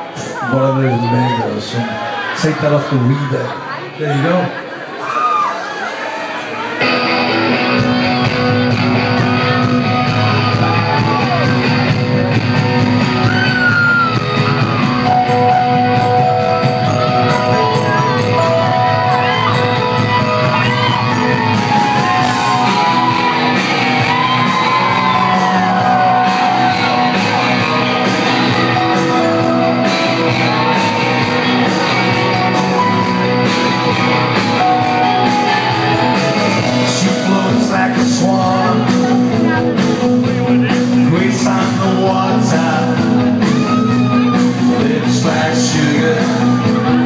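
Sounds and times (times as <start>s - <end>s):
live rock band: 4.9s - 47.0s
electric guitar: 6.5s - 47.0s
steady drum beat: 7.8s - 47.0s
person singing: 15.0s - 47.0s.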